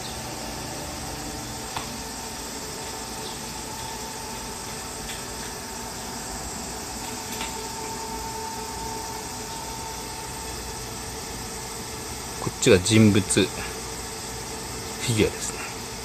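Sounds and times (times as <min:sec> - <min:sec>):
vending machine cooling hum: 0:00.0 - 0:16.0.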